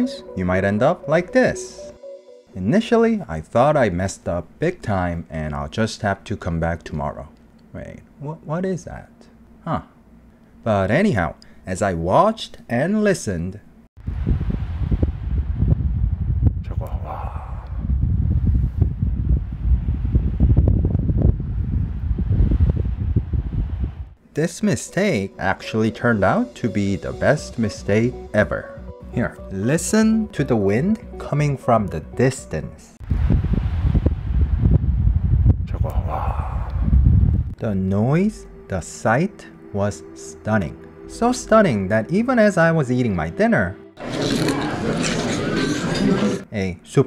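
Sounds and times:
wind gusting on microphone: 14.0s - 24.2s, 33.0s - 37.6s
distant wind rushing: 33.0s - 37.6s.

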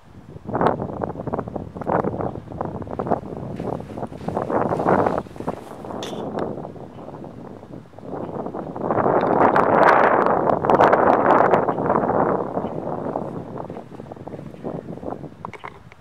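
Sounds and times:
wind gust on microphone: 0.0s - 16.0s.

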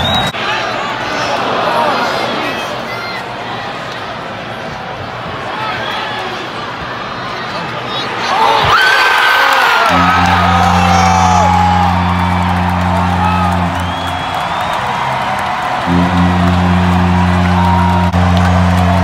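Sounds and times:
crowd cheering and whooping: 8.2s - 19.0s
low goal horn blasts: 9.8s - 19.0s.

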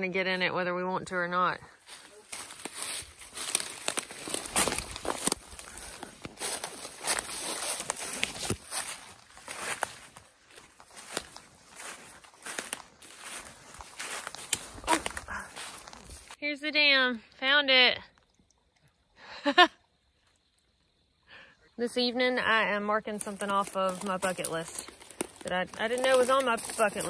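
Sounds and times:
footsteps crunching dry leaves: 1.8s - 16.4s, 23.2s - 27.0s.

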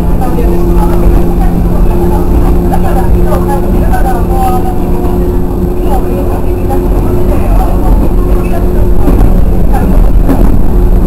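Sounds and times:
electric train motor hum: 0.0s - 11.0s
low rumble of running gear: 0.0s - 11.0s.

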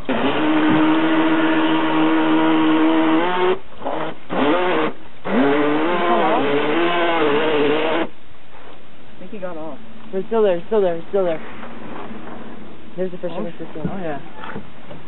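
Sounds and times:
electric motor of toy boat: 0.0s - 8.1s.

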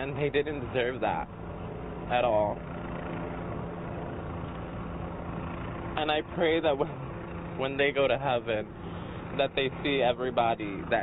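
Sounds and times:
engine hum of idling traffic: 0.0s - 11.0s.

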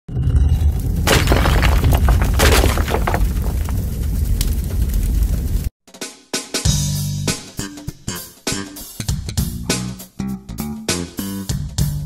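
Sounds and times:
deep rumble: 0.2s - 5.7s
crashing and shattering: 0.7s - 5.4s.

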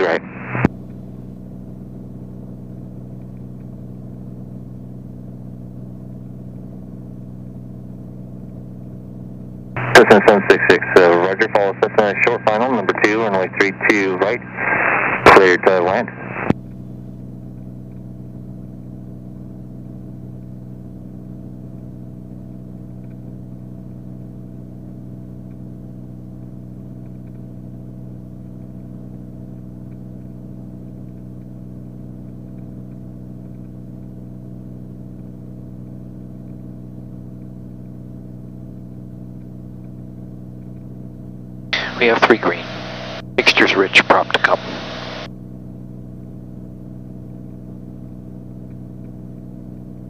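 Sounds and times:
airplane engine and propeller drone: 0.0s - 6.8s, 9.8s - 19.3s, 41.8s - 45.5s.

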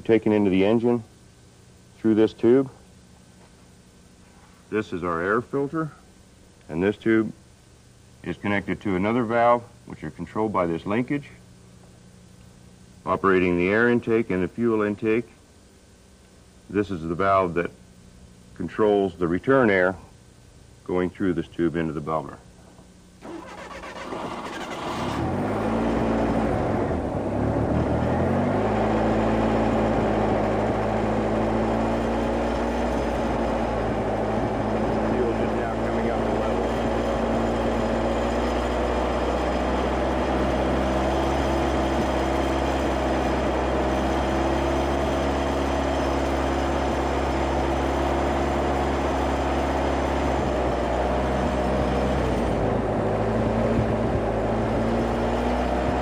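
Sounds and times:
car engine starting and idling: 23.2s - 56.0s.

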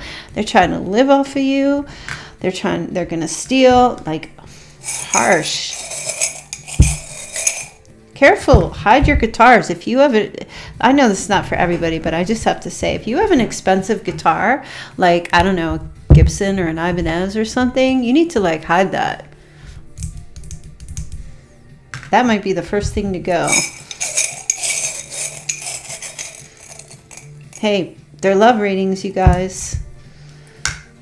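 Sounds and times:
faint background music: 0.0s - 31.0s
metal charms clinking: 4.8s - 7.8s, 23.4s - 27.7s.

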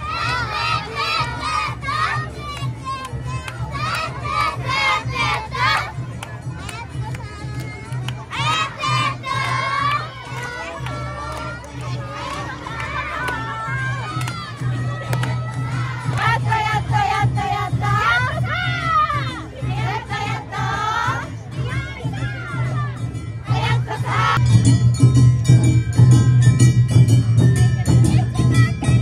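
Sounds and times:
children shouting chant calls: 0.0s - 6.0s, 6.8s - 24.4s
festival crowd din: 0.0s - 29.0s.

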